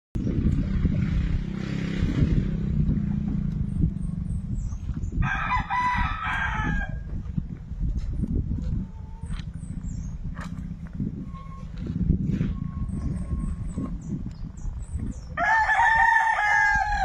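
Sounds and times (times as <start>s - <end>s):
steady low rumble: 0.2s - 17.0s
rooster crowing: 5.2s - 7.1s, 15.4s - 17.0s.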